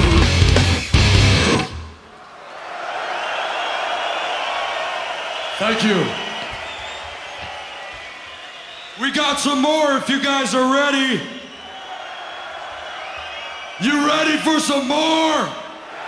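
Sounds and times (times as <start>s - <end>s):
death metal band playing live: 0.0s - 1.7s
crowd noise: 0.0s - 16.0s.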